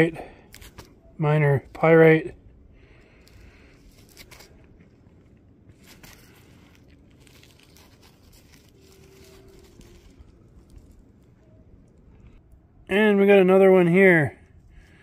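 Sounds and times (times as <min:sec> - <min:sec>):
glove rubbing on rough rock: 0:05.7 - 0:11.0.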